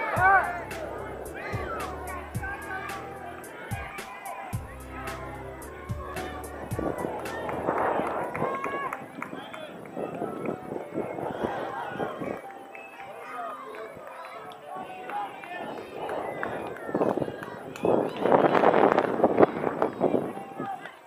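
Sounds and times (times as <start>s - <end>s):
distant voices calling out: 0.0s - 21.0s.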